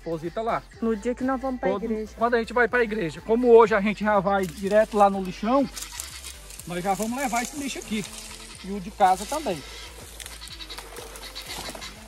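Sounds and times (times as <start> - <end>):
dry palm frond rustling: 3.8 - 12.0.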